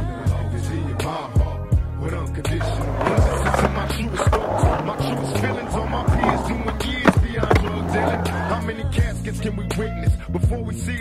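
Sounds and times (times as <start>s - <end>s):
skateboard wheels rolling on concrete: 0.1s - 10.1s
skateboard clacks: 2.4s - 9.1s.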